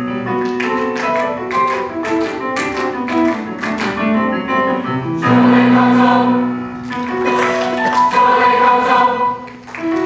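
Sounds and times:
piano accompaniment: 0:00.0 - 0:10.0
choir singing: 0:05.2 - 0:06.6, 0:07.3 - 0:09.5.

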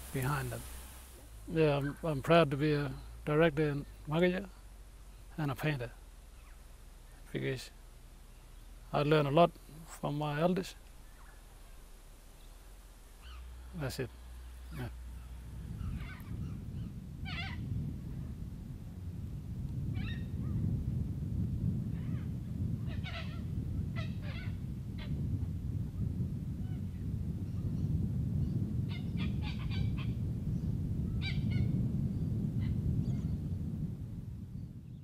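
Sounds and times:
steady low rumble: 0:00.0 - 0:35.0.

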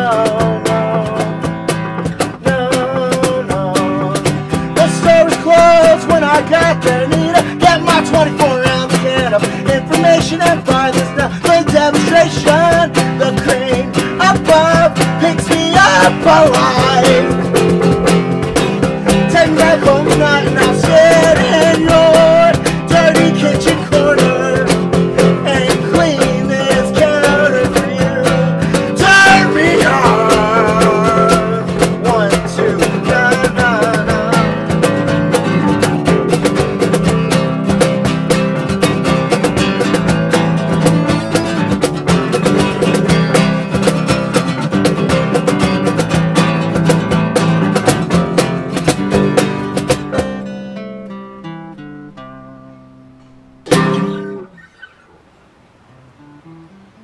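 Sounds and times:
person singing: 0:00.0 - 0:37.0
bass guitar: 0:00.0 - 0:54.8, 0:56.0 - 0:57.0
cajon drum: 0:00.0 - 0:55.1
acoustic guitar strumming: 0:00.0 - 0:57.0.

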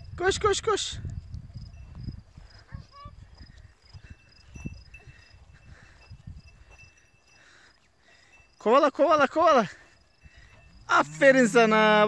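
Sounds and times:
faint insect chirping: 0:00.0 - 0:12.0.

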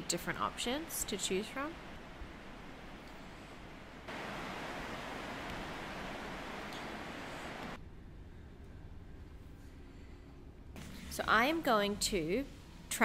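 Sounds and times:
rain falling: 0:00.0 - 0:07.8.

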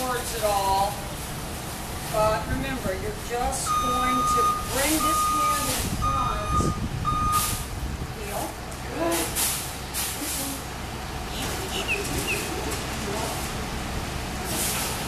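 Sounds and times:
bus engine idling: 0:00.0 - 0:15.0.

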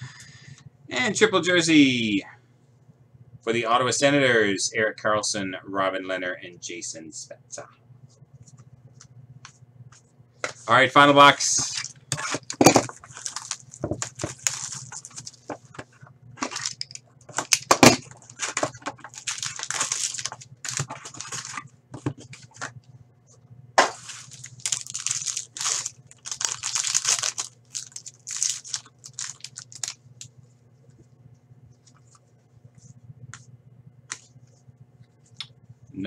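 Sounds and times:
foil packs crinkling and tearing: 0:11.7 - 0:22.6, 0:23.9 - 0:30.0.

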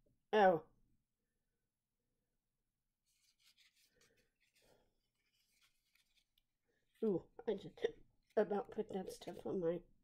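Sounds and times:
faint rustling and scraping: 0:03.0 - 0:07.0.

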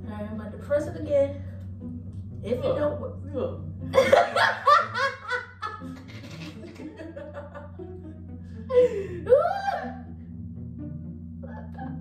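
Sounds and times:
young women laughing: 0:03.9 - 0:09.6.

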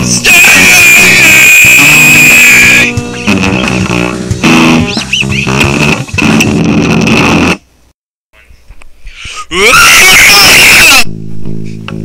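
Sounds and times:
electric guitar: 0:00.0 - 0:07.6
bass guitar: 0:00.0 - 0:07.7, 0:09.6 - 0:12.0.

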